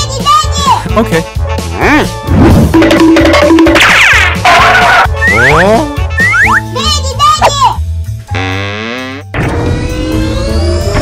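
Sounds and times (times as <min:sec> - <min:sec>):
upbeat children's music: 0:00.0 - 0:09.2
cartoon sliding sound effects: 0:03.8 - 0:06.7.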